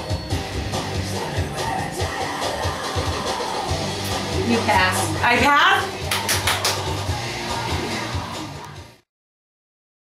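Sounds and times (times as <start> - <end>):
dance music with steady beat: 0.0 - 9.0.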